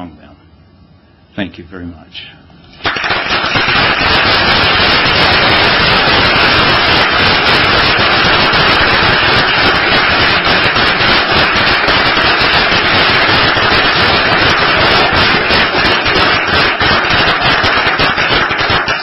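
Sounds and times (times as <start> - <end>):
audience applause: 2.8 - 19.0.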